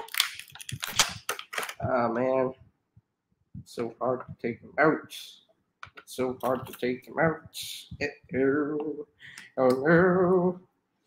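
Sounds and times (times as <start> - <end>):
plastic packaging crinkling: 0.0 - 1.9.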